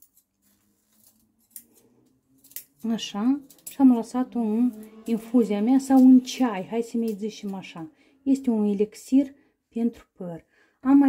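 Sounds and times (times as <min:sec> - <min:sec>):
scissors snipping stems: 0:00.9 - 0:07.8.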